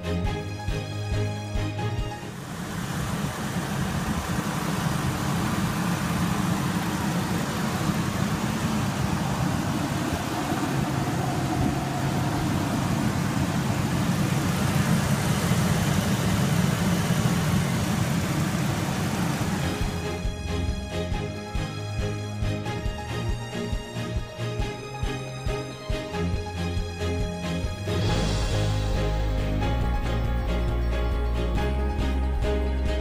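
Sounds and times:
engine running steadily: 0.0s - 33.0s.

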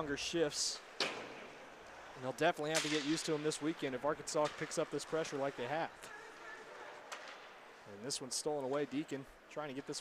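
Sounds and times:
low hiss of arena: 0.0s - 10.0s.

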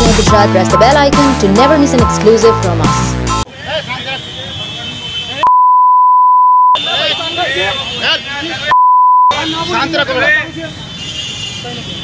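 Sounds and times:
censor bleep tone: 5.4s - 6.8s, 8.7s - 9.3s
excited men's voices: 9.3s - 10.8s.

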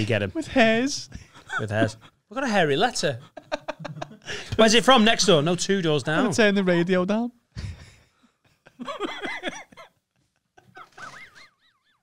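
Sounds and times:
men laughing: 1.3s - 2.2s, 3.1s - 5.6s, 7.6s - 11.8s.

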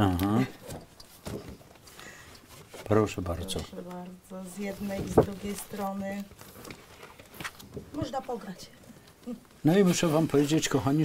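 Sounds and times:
paper and folders handled: 0.6s - 11.0s.

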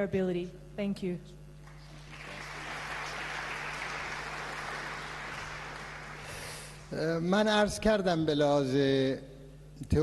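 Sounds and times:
audience applauding: 1.7s - 6.9s.

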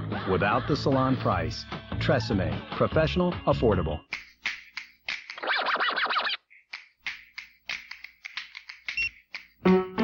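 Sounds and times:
record scratching: 5.4s - 6.4s.

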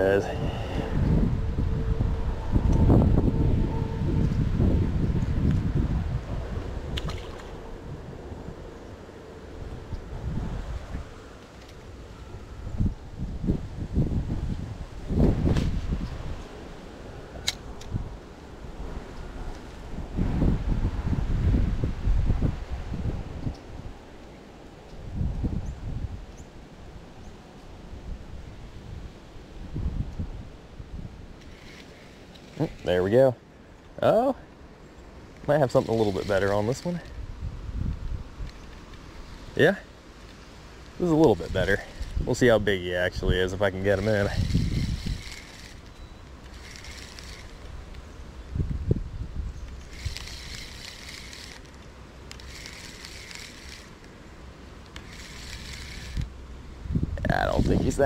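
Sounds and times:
wind buffeting microphone: 0.0s - 8.8s, 9.5s - 11.2s, 11.9s - 24.1s, 24.9s - 27.0s, 27.9s - 31.8s, 35.6s - 39.5s, 41.0s - 54.0s, 55.0s - 58.0s
sharp clicks: 49.6s - 54.2s, 54.8s - 56.3s.

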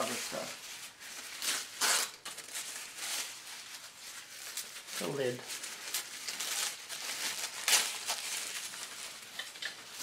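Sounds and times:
tissue paper rustling and crinkling: 0.0s - 10.0s.

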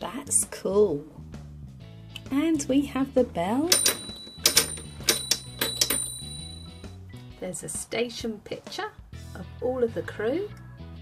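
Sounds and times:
background music: 0.0s - 11.0s
toy alarm bell ringing: 3.7s - 6.8s.

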